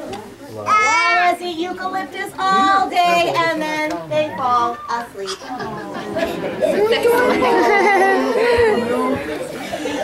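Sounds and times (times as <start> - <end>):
chatter of children and adults: 0.0 - 10.0.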